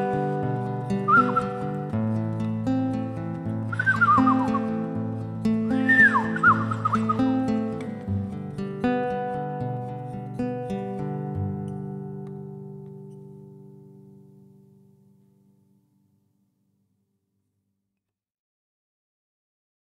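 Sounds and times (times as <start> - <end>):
classical guitar: 0.0 - 16.0.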